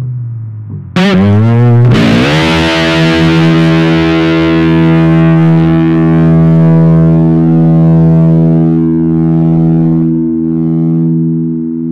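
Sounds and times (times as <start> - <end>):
distorted electric guitar tone: 0.0 - 11.9.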